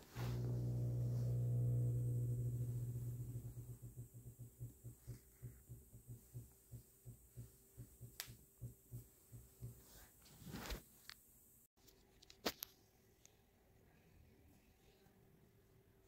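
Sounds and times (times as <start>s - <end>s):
low hum with overtones: 0.0s - 7.9s
soft low pulsing: 0.0s - 9.6s.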